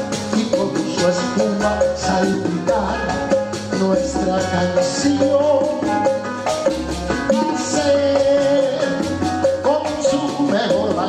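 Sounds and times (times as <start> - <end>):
live latin band playing: 0.0 - 11.0.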